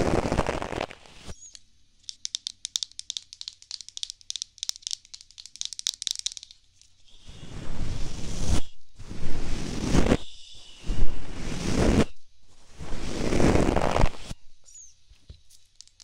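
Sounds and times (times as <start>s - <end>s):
scratchy brushing noise: 0.0s - 1.3s, 7.1s - 14.4s.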